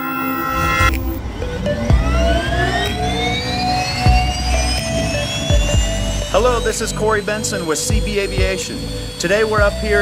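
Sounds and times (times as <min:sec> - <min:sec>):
music with deep beats: 0:00.0 - 0:10.0
turboprop turbine whine: 0:00.0 - 0:10.0.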